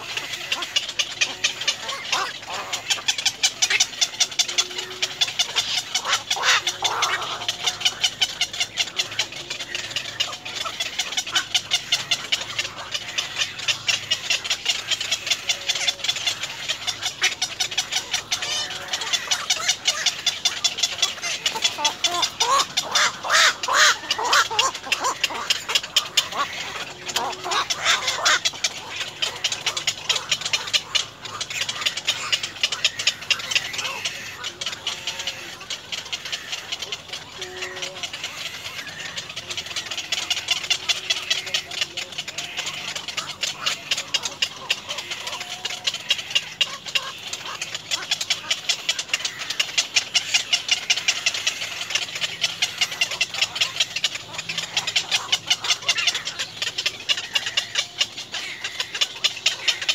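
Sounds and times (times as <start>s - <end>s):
herons harsh squawks: 0.0s - 59.9s
herons ticking chatter: 0.0s - 59.9s.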